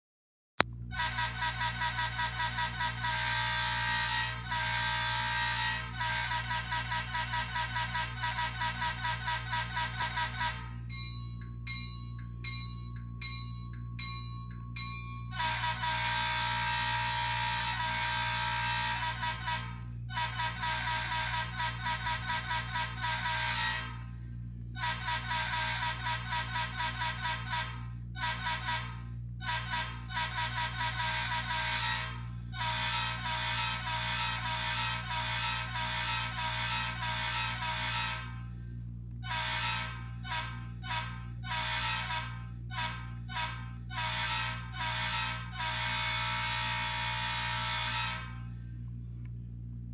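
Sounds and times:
steady low hum: 0:00.6 - 0:49.9
model train horn toots: 0:00.9 - 0:11.0, 0:15.2 - 0:24.2, 0:24.8 - 0:38.5, 0:39.2 - 0:48.6.

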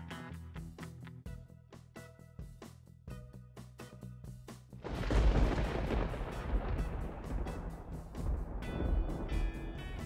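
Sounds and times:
music with a light beat: 0:00.0 - 0:10.0
wind buffeting microphone: 0:04.8 - 0:10.0.

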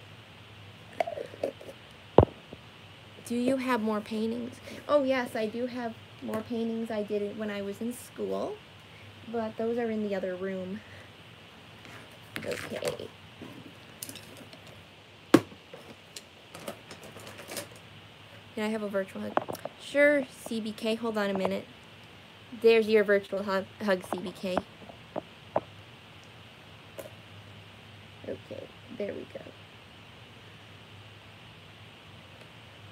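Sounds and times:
low steady room hum: 0:00.0 - 0:32.9.

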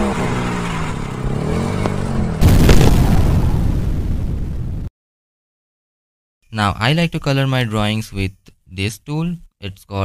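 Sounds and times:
deep rumbling boom: 0:02.4 - 0:04.9.

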